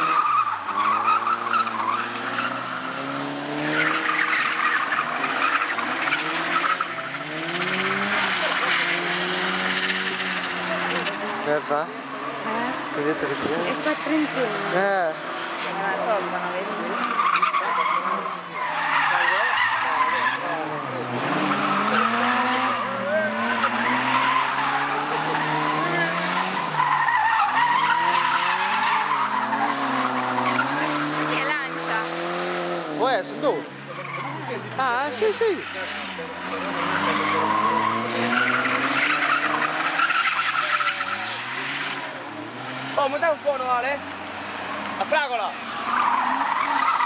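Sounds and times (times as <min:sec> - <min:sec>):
car engine running hard: 0:00.0 - 0:47.0
tyres screeching: 0:00.0 - 0:47.0.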